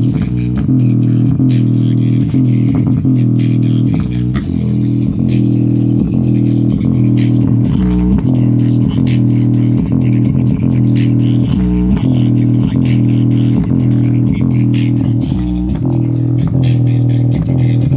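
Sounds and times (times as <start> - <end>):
bass-heavy music through speaker: 0.0 - 17.9.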